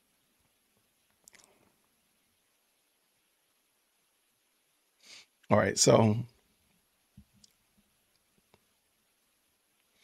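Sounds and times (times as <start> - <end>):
man's voice: 5.5 - 6.3.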